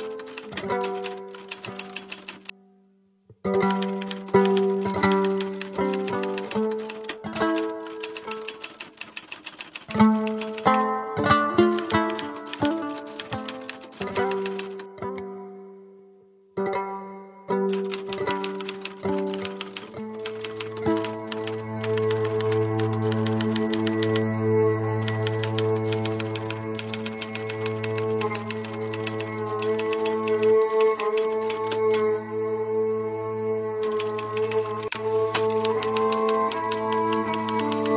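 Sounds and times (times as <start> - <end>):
typewriter keystroke clicks: 0.0 - 2.5, 3.6 - 10.9, 11.6 - 14.9, 17.7 - 24.3, 25.0 - 32.1, 33.8 - 37.9
background music with held notes: 0.0 - 8.8, 9.9 - 37.9
fast ticking beat: 3.6 - 10.8, 11.7 - 14.8, 17.7 - 24.2, 25.1 - 31.8.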